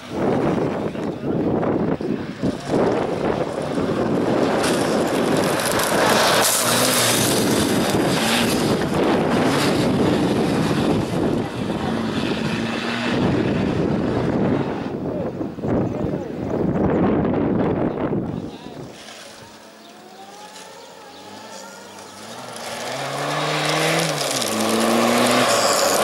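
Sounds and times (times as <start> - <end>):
racing car engine accelerating: 2.3 - 15.0, 19.4 - 26.0.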